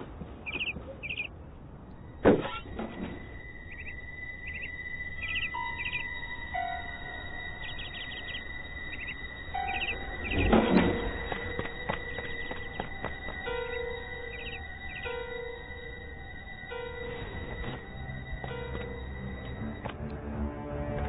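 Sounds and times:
small bird chirping: 0.4 - 1.3, 3.3 - 19.7
soft background music: 2.0 - 21.0.

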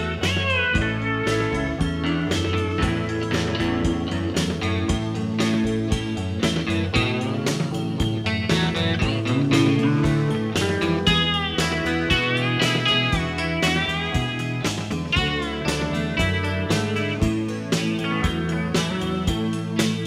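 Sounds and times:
pedal steel guitar lead: 0.0 - 20.0
steady drum beat: 0.0 - 20.0
strummed guitar: 0.0 - 20.0.

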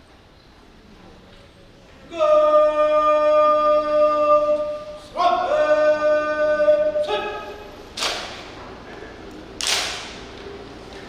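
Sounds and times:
bugle long-held notes: 2.1 - 7.8.

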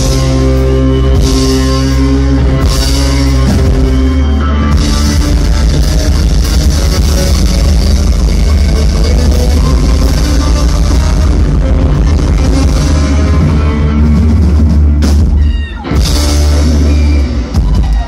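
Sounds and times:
rock band playing loud: 0.0 - 18.0.

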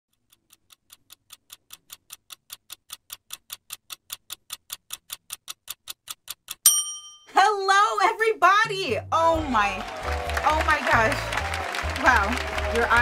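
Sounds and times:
fast clock-like ticking: 0.1 - 6.6.

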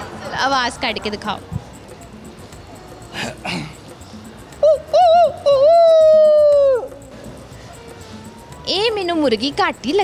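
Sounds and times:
man imitating animal cry: 4.6 - 6.9.

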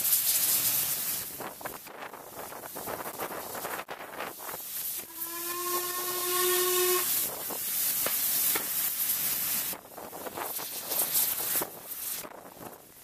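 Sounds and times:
train running noise: 1.6 - 8.7
steam locomotive whistle: 5.0 - 7.4.

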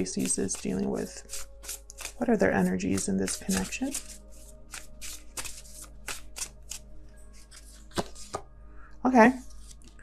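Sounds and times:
cards being shuffled: 0.0 - 8.5, 9.4 - 10.0.

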